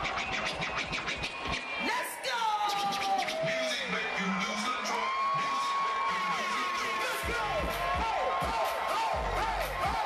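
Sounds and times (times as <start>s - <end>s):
crowd cheering and whooping: 0.0s - 10.0s.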